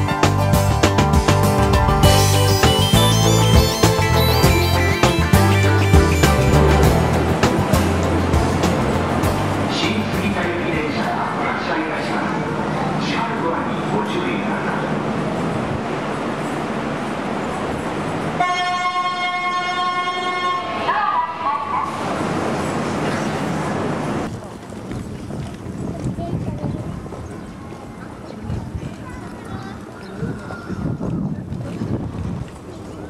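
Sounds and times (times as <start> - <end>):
station platform noise: 0.0 - 26.2
horn-like warning tone: 2.0 - 7.2, 18.4 - 22.0
people's voices: 2.0 - 15.8, 20.6 - 33.0.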